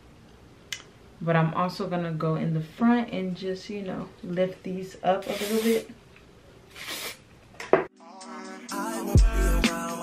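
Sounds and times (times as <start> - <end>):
aerosol spray hiss: 5.2 - 5.8, 6.7 - 7.2
background music with singing: 7.9 - 10.0.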